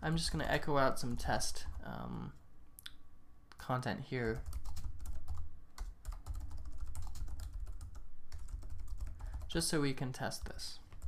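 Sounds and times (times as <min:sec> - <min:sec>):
computer keyboard typing: 0:04.2 - 0:09.7.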